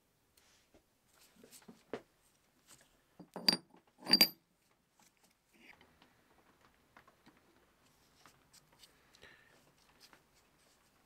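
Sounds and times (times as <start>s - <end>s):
faint metallic ring: 3.2s - 4.4s
steel parts clicking and scraping: 3.2s - 4.4s.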